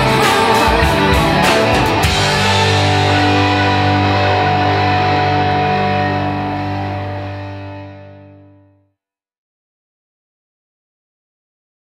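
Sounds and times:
guitar and bass chord ringing: 0.0s - 8.9s.

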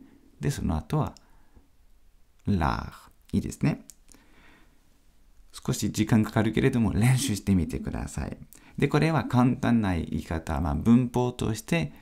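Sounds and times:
person speaking: 0.4s - 1.3s, 2.4s - 4.0s, 5.5s - 12.0s.

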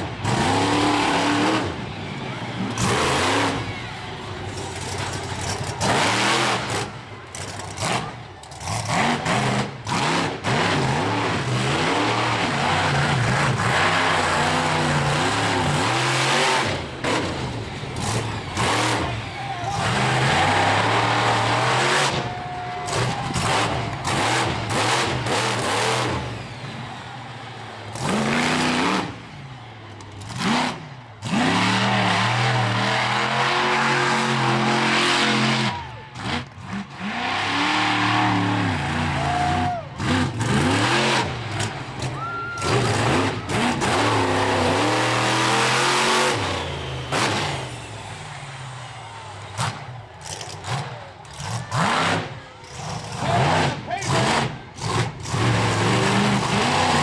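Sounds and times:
truck engine revving hard: 0.0s - 57.0s.

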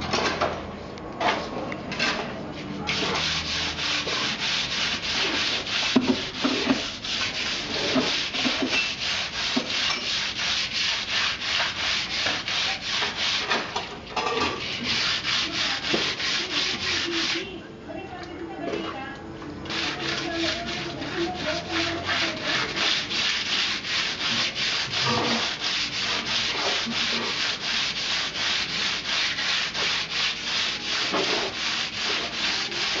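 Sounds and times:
hand scraping on concrete wall: 2.9s - 17.5s, 19.7s - 33.0s.

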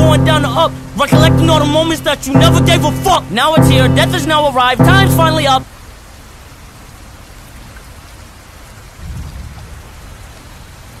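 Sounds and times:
steady rain falling: 1.9s - 11.0s.

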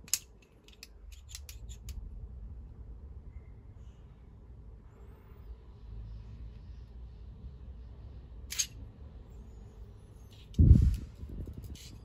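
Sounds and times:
handling metal tools: 8.5s - 8.8s
sharp metallic click: 8.5s - 8.8s.

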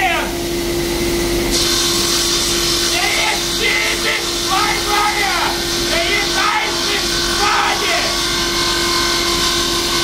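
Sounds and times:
table saw running: 1.5s - 10.0s.

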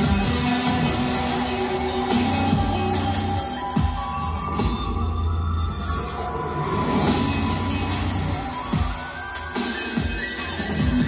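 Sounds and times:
cinematic soundtrack music: 0.0s - 11.0s.

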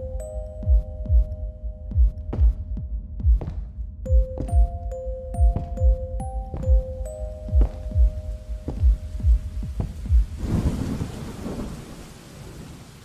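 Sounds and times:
low heartbeat-like thumps: 0.0s - 11.0s
falling rain: 8.1s - 13.0s
thunder rumble: 9.2s - 13.0s.

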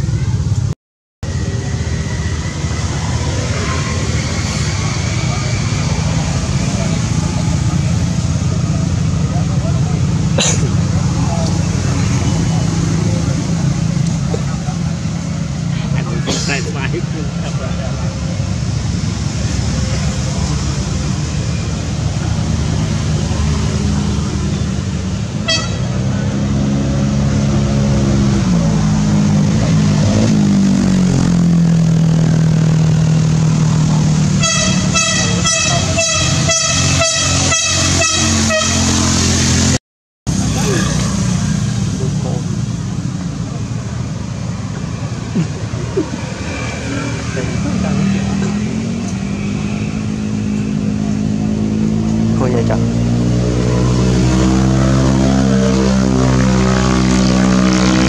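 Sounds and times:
vehicle engine running: 0.0s - 58.0s
horn toots: 25.4s - 26.3s, 34.3s - 39.6s.

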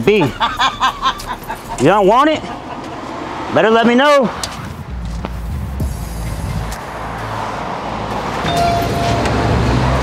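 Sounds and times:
passing cars rumbling: 0.0s - 10.0s
brief high tone: 8.4s - 9.4s.

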